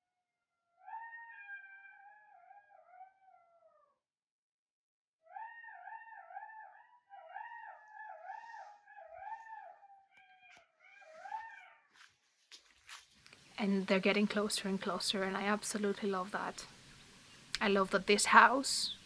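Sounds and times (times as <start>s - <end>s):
jackals howling: 0.8s - 4.0s, 5.3s - 12.0s.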